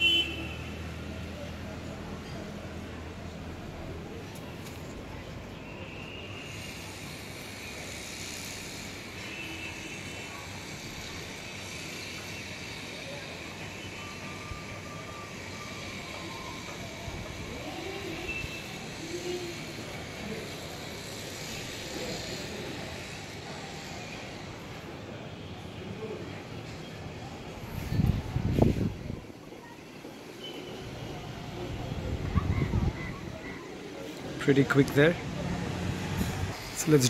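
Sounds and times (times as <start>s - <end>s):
distant city traffic: 0.0s - 37.0s
distant voices: 0.0s - 37.0s.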